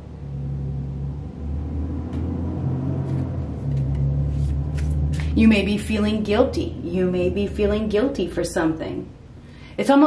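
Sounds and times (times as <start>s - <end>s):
low mechanical rumble with hum: 0.0s - 10.0s.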